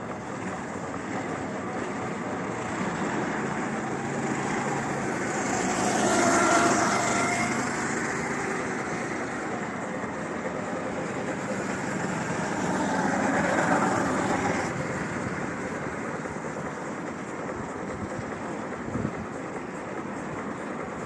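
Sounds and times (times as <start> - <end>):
go-kart engines: 0.0 - 21.0.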